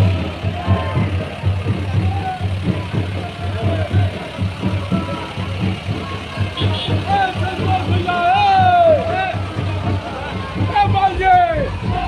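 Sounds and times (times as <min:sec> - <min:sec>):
faint crowd voices: 0:00.0 - 0:12.0
vehicle engine rumbling: 0:00.0 - 0:12.0.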